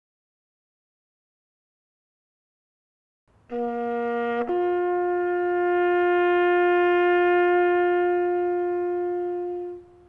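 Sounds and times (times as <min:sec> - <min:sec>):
brass instrument long note: 0:03.5 - 0:10.0.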